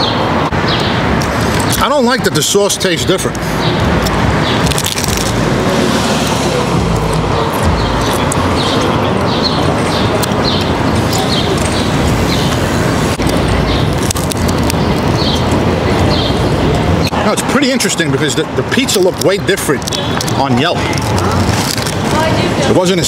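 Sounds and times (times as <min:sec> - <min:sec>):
city street traffic: 0:00.0 - 0:23.0.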